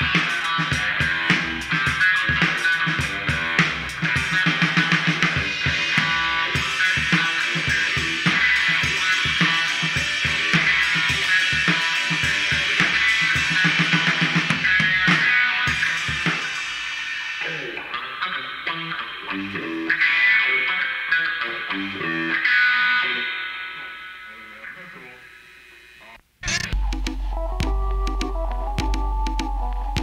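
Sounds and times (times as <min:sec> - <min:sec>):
drum kit beat: 0:00.0 - 0:18.0, 0:26.7 - 0:30.0
rock guitar: 0:00.0 - 0:30.0.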